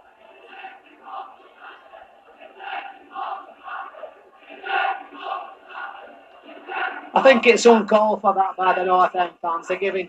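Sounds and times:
football crowd chanting: 0.0 - 9.2.

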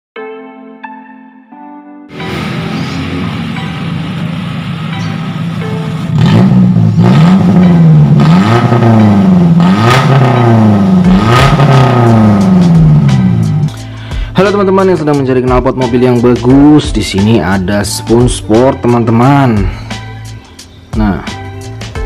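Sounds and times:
car engine revving: 2.1 - 13.7.

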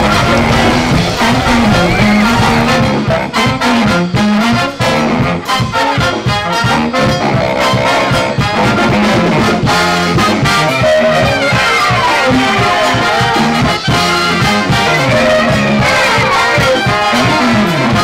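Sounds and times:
brass band playing upbeat tune: 0.0 - 18.0.

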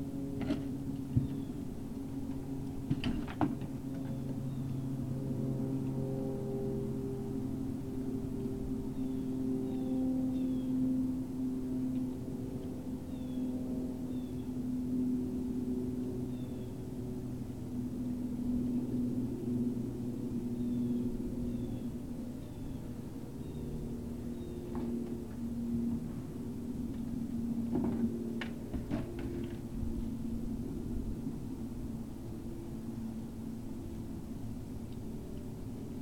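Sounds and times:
low drone of held tones: 0.0 - 36.0.

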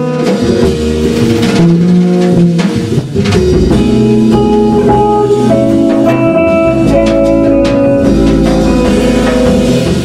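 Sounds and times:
drum and cymbal strokes: 0.0 - 10.0
electric guitar notes: 0.0 - 10.0
walking bass line: 0.0 - 10.0.

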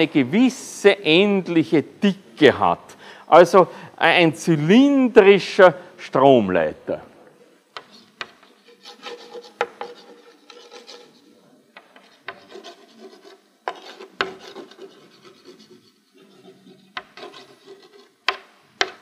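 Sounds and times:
chalk tapping on board: 7.8 - 11.1, 11.8 - 15.8, 16.9 - 19.0
chalk scratching on blackboard: 7.8 - 19.0.

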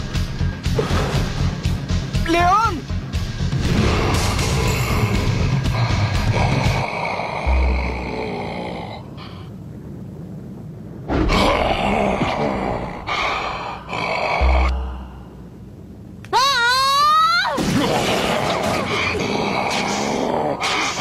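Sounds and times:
dramatic background music: 0.0 - 8.4
deep booms: 3.5 - 6.8
monster growling and roaring: 3.6 - 9.2, 11.1 - 15.4, 17.6 - 21.0.

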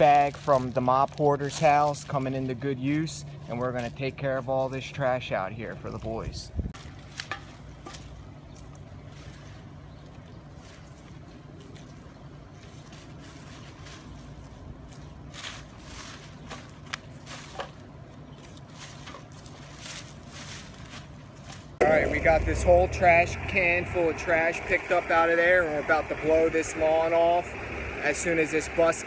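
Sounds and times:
litter rustling in plastic bag: 0.0 - 2.6
bus engine idling: 8.2 - 29.0.

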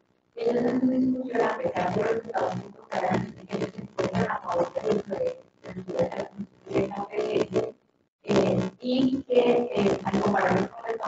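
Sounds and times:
person speaking into a microphone: 0.4 - 7.7, 8.3 - 11.0.

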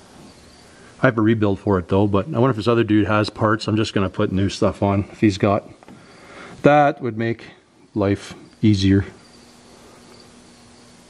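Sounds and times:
faint low hum: 0.0 - 11.0
soft hiss: 0.0 - 11.0.

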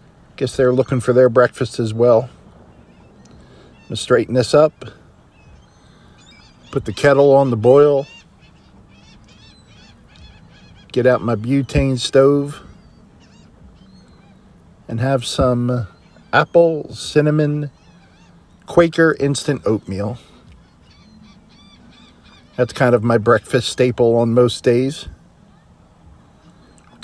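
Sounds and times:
birds chirping: 0.0 - 27.0
faint low steady hum: 0.0 - 27.0.

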